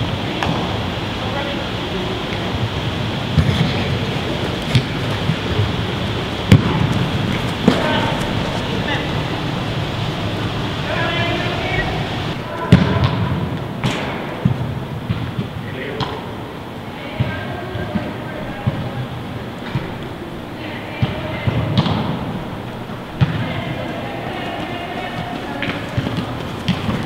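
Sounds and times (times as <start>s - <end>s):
distant voices in hall: 0.0s - 27.0s.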